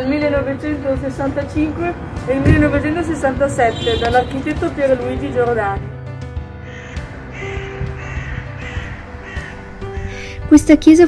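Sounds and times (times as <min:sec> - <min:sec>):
soft background music: 0:00.0 - 0:11.0
bird giving rough calls: 0:06.6 - 0:10.4.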